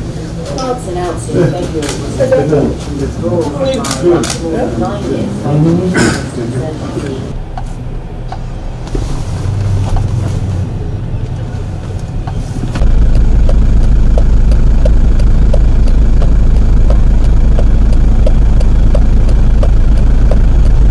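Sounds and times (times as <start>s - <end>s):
heavy engine rumbling: 0.0s - 20.9s
low hum: 7.1s - 20.9s
faint regular ticking: 12.3s - 20.9s.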